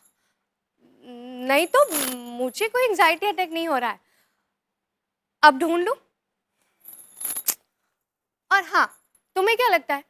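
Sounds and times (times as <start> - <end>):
metallic jingle of bangles: 1.4 - 3.6, 6.7 - 7.7.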